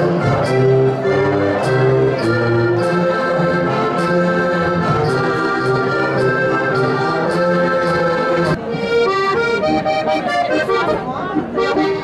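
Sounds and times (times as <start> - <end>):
brass bass horn: 0.0 - 8.6
button accordion playing chords: 0.0 - 12.0.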